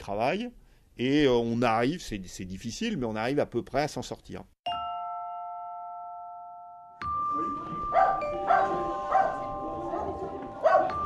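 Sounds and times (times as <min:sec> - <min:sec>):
bell-like chime chord: 0:04.7 - 0:11.0
sustained bell tones: 0:04.7 - 0:11.0.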